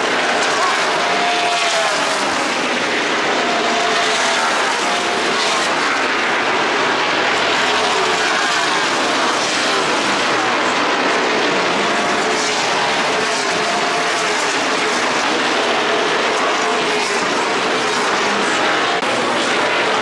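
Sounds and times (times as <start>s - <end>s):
race cars passing at full throttle: 0.0s - 20.0s.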